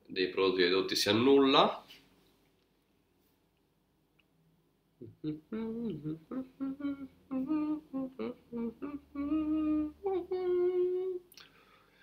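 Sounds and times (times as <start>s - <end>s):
man humming: 5.0s - 11.4s.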